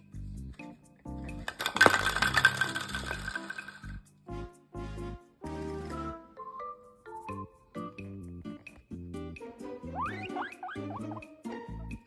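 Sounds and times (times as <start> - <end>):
background music: 0.0 - 12.0
toy bowling pins clattering on floor: 1.3 - 4.0.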